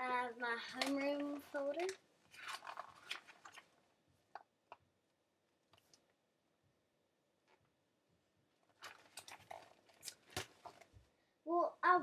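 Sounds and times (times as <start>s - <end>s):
folder rustling and clicking: 0.8s - 3.7s, 8.7s - 10.9s.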